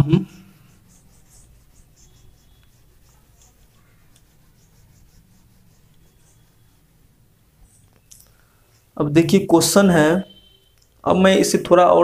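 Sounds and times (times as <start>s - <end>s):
duster rubbing whiteboard: 0.4s - 8.0s.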